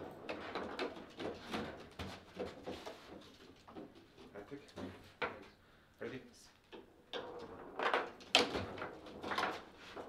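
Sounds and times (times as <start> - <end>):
foosball ball clacks: 6.8 - 9.7.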